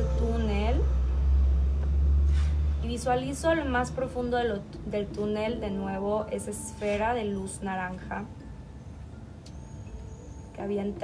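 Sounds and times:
woman speaking: 0.0 - 1.0, 2.8 - 8.4, 10.6 - 11.0
low rumble: 0.0 - 6.4.

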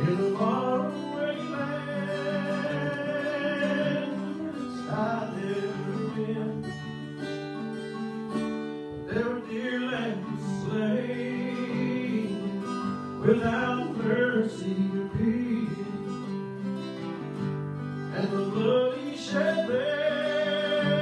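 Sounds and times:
man singing into a microphone: 0.0 - 7.1, 8.9 - 16.4, 18.1 - 21.0
strummed acoustic guitar: 0.0 - 21.0.

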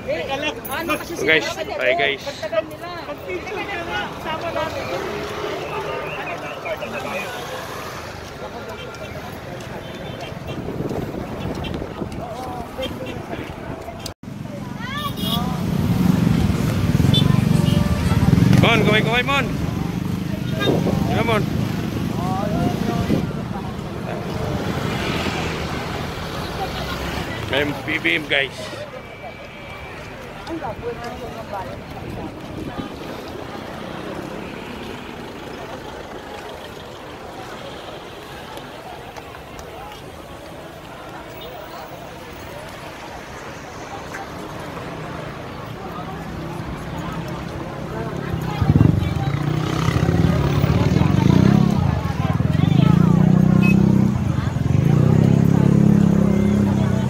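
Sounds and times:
faint street voices: 0.0 - 57.0
wind buffeting microphone: 10.3 - 14.0.

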